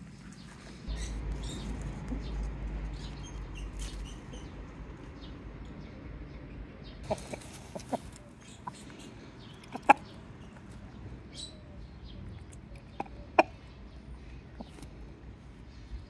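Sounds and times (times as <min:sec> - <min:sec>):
chickens clucking: 0:07.0 - 0:11.5, 0:12.2 - 0:13.8, 0:14.6 - 0:14.9.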